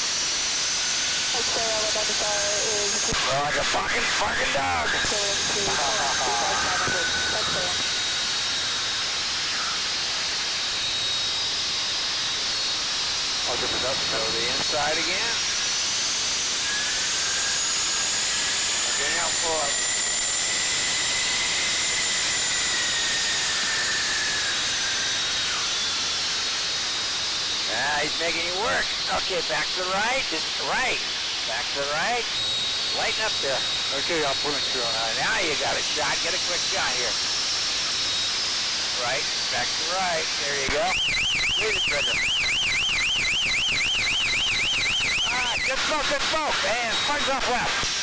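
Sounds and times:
cockpit drone: 0:00.0 - 0:48.0
faint high whine: 0:00.0 - 0:48.0
small aircraft engine: 0:00.0 - 0:48.0
electronic warbling tone: 0:02.9 - 0:08.2, 0:40.1 - 0:45.9.

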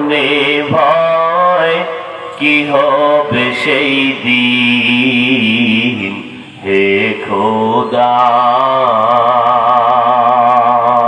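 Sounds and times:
man singing devotional song: 0:00.0 - 0:11.0.

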